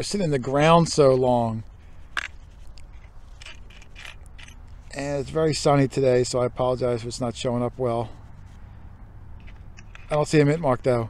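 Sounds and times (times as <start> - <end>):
faint clicks and rustles: 0.6 - 5.0.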